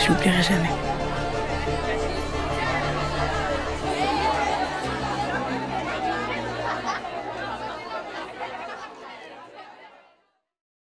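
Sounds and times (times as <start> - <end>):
chatter of voices: 0.0 - 10.2.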